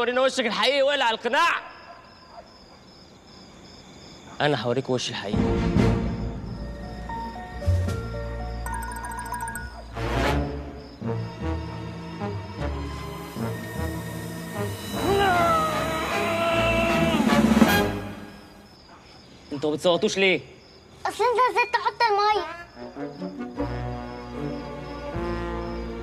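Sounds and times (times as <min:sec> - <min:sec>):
crickets chirping: 0:00.0 - 0:26.0
film music: 0:05.4 - 0:18.6, 0:22.8 - 0:26.0
high-pitched wailing cry: 0:15.0 - 0:17.1.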